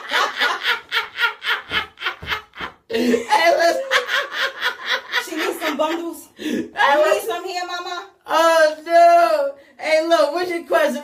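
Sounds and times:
person laughing in breathy bursts: 0:00.0 - 0:05.2.

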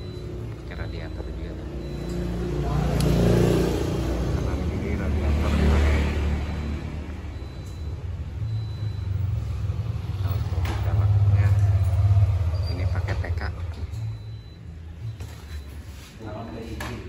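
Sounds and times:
vehicle engine rumble: 0:00.0 - 0:16.8.

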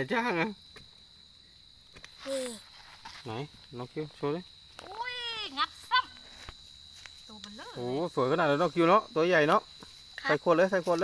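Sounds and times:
faint high insect trill: 0:00.0 - 0:11.0.

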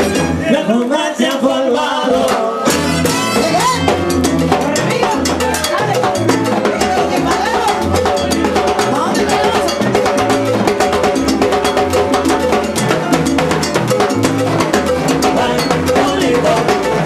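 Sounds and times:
bass line: 0:00.0 - 0:17.0
fast percussion: 0:00.0 - 0:17.0
people singing into microphones: 0:00.0 - 0:17.0
salsa band playing: 0:00.0 - 0:17.0.

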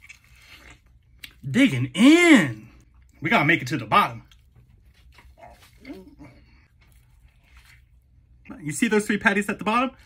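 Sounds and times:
man chewing sandwich: 0:00.0 - 0:01.5, 0:02.1 - 0:03.2, 0:04.1 - 0:08.5.

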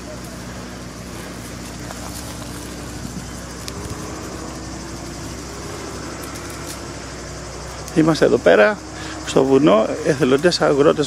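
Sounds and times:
steady hiss: 0:00.0 - 0:11.0
tractor engine running: 0:00.0 - 0:11.0.

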